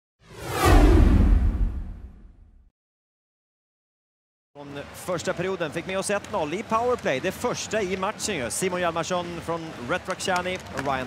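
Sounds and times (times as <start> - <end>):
whoosh with deep low rumble: 0.2 - 2.7.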